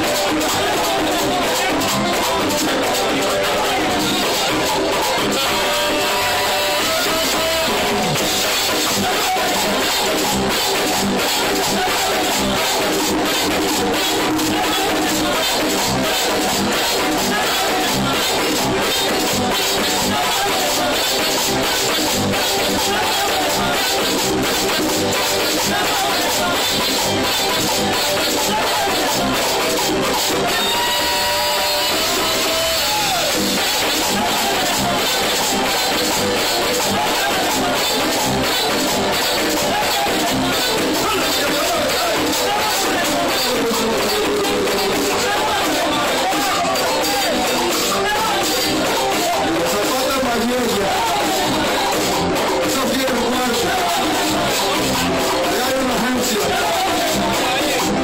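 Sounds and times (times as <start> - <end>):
drums: 0.0 - 58.0
gourd scraper rhythm: 0.0 - 58.0
guitar: 0.0 - 58.0
live band playing: 0.0 - 58.0.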